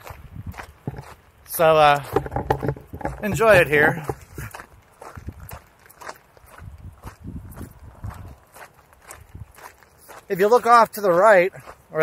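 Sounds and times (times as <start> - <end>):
footsteps on gravel trail: 0.0 - 12.0.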